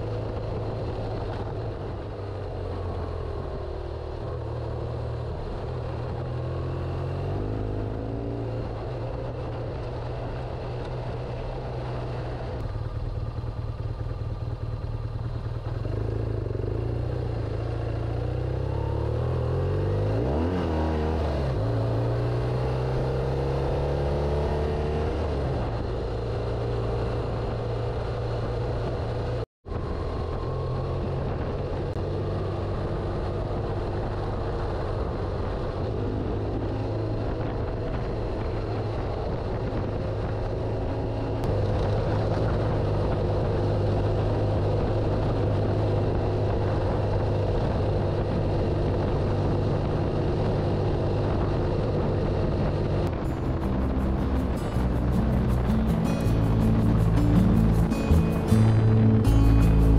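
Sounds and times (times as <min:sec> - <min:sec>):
motorcycle engine running: 0:00.0 - 0:59.9
wind noise: 0:19.5 - 0:59.9.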